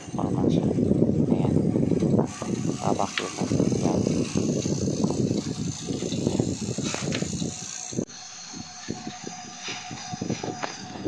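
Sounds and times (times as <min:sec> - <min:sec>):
vacuum pump rattling: 0:00.0 - 0:11.0.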